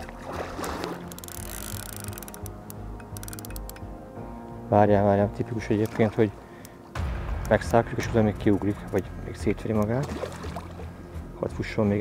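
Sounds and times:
fish thrashing and splashing: 0.0 - 3.7, 9.8 - 10.9
background music: 0.0 - 12.0
splashy clicks: 0.2 - 3.8, 7.4 - 10.9.

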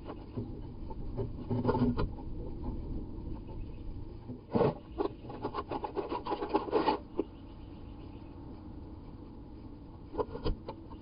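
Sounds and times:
bird scratching inside wooden box: 4.5 - 7.3.

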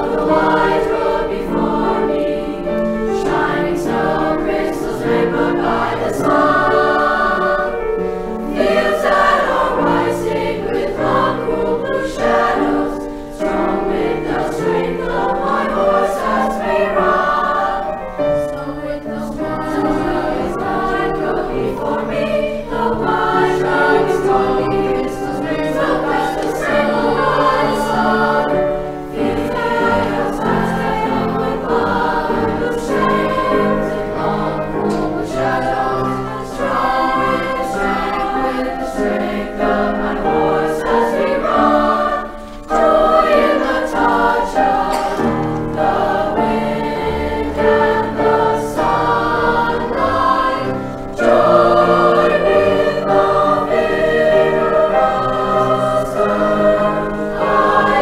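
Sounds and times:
choir singing in parts: 0.0 - 58.0
piano accompaniment: 0.0 - 58.0.

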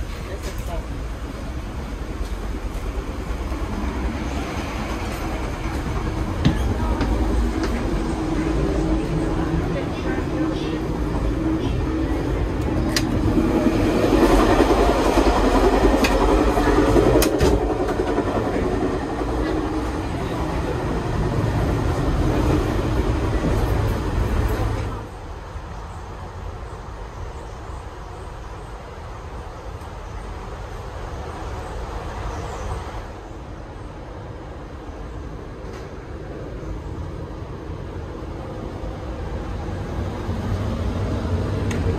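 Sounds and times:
train rumble and rattle: 0.0 - 41.9.

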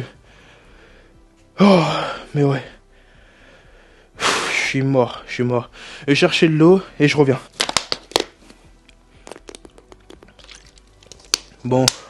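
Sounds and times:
plastic bottle crackling: 7.5 - 8.6, 9.2 - 12.0.

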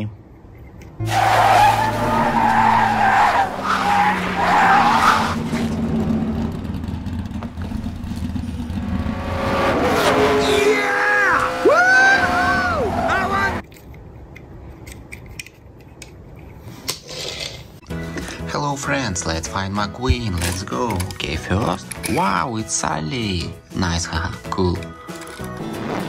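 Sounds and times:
squeals of rising and falling pitch: 1.0 - 5.4, 9.8 - 13.6
tires skidding: 1.0 - 13.6
race car engines running: 1.1 - 13.6.

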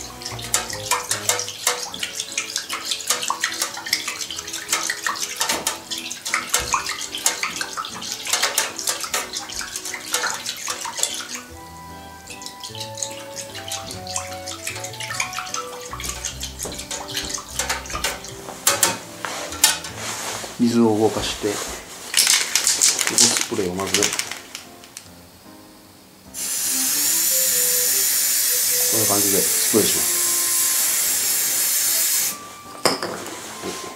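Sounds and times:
water splashing stirred by rod: 0.0 - 11.6, 12.2 - 20.5
background music: 0.0 - 21.9, 22.8 - 33.9.

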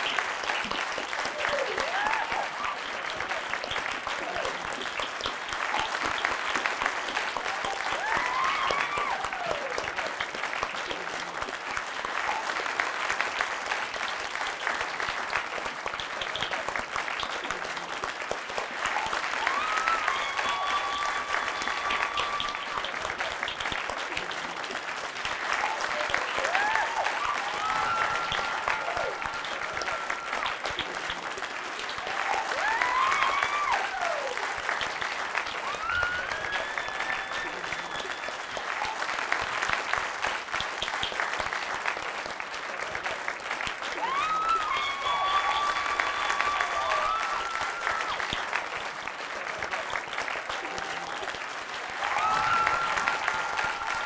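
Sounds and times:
audience applauding: 0.0 - 54.0.

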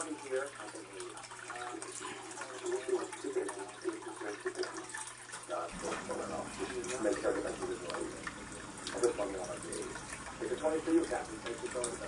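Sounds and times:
aquarium filter running water: 0.0 - 12.0.

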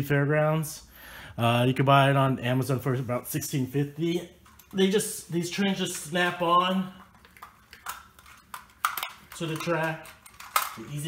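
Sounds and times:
plastic toy train clicks and snaps: 7.8 - 10.8.

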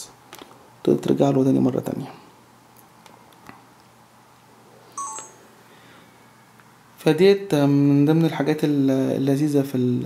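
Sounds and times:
camera electronic beep: 5.0 - 5.4.

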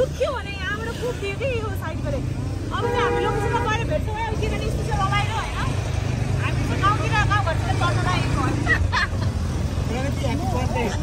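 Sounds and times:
people chattering: 0.0 - 11.0
vehicle engine rumbling: 0.0 - 11.0.

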